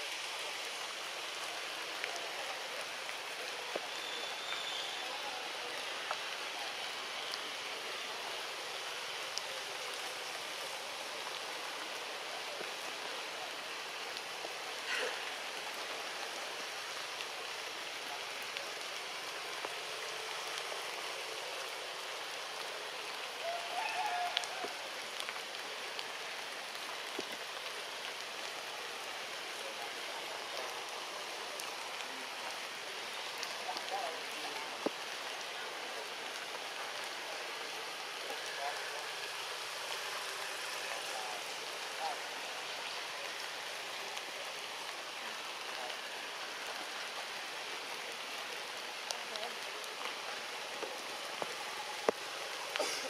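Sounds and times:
rushing forest background noise: 0:00.0 - 0:53.0.

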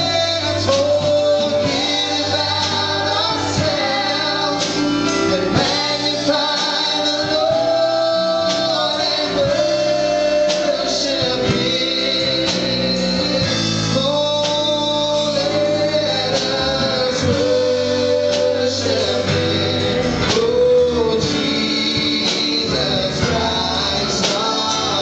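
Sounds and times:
gospel singing voices: 0:00.0 - 0:25.0
guitar: 0:00.0 - 0:25.0
keyboard: 0:00.0 - 0:25.0.

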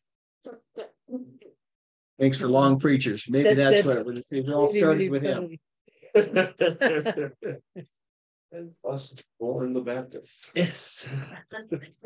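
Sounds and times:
person chuckling softly: 0:06.2 - 0:07.8.

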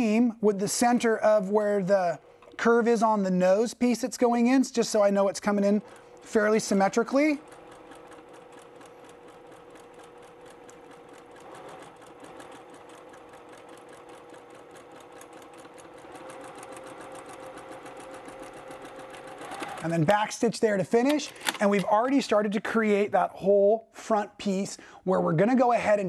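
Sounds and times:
sewing machine stitching: 0:00.0 - 0:20.4.

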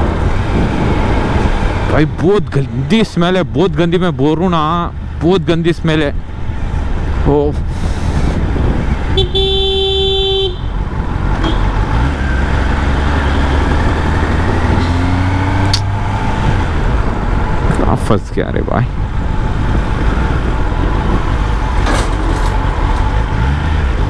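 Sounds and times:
vehicle horn honking: 0:09.1 - 0:10.8, 0:11.4 - 0:11.8.

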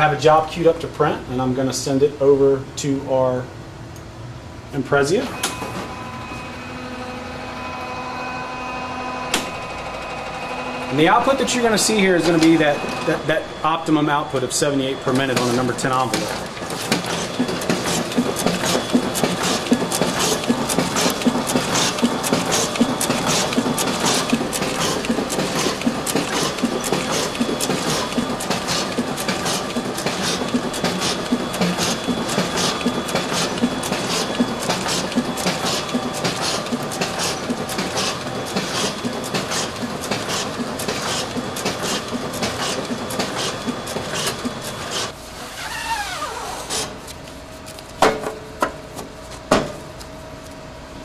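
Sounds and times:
printing press clicking and humming: 0:04.9 - 0:07.8, 0:09.2 - 0:45.2
machine winding down whine: 0:05.3 - 0:46.9.

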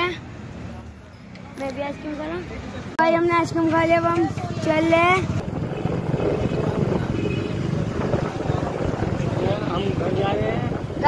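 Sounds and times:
surrounding traffic: 0:00.0 - 0:11.0
vehicle rumble: 0:00.0 - 0:11.0.

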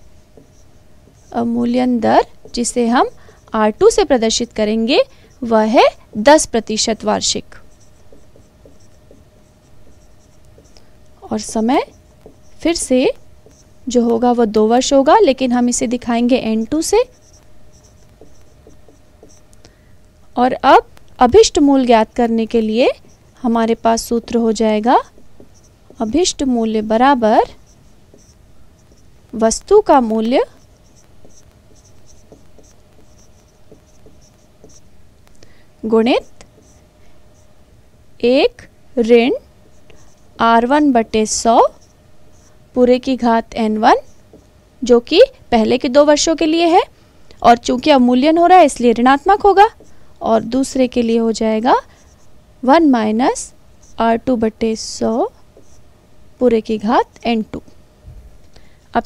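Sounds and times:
marker squeaking on whiteboard: 0:00.0 - 0:19.6, 0:20.8 - 0:37.6, 0:38.5 - 0:46.8, 0:47.5 - 0:52.4, 0:53.8 - 0:55.9
faint steady hum: 0:00.0 - 0:59.0.

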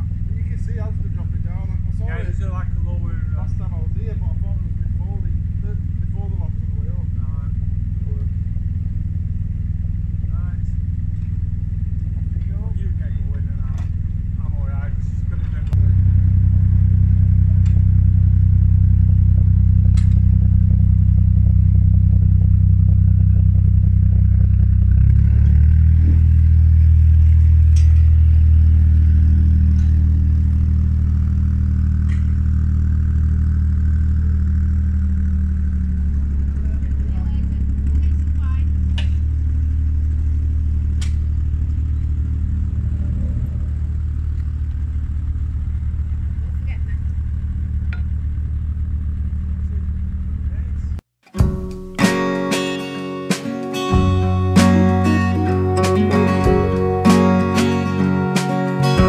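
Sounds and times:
boat diesel engine running: 0:00.0 - 0:52.0.

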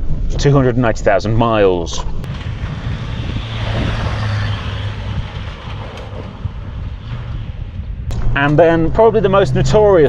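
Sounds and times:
low engine hum: 0:02.2 - 0:10.0.

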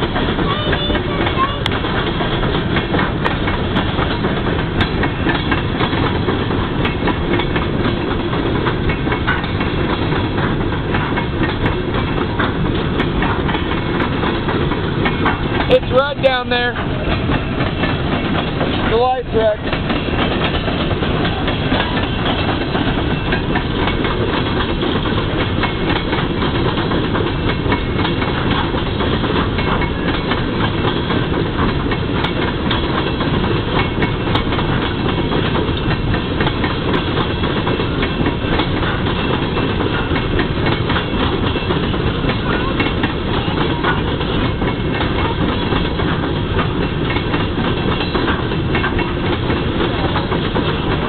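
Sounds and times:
train wheels rumbling on rails: 0:00.0 - 0:51.0.

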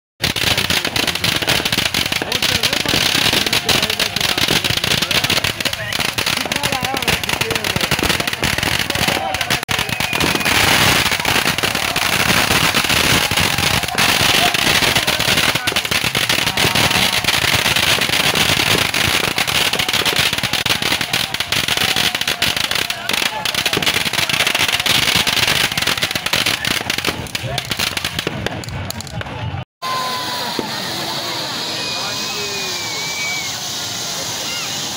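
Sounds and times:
fireworks crackling and popping: 0:00.2 - 0:34.9
voices: 0:00.3 - 0:34.9.

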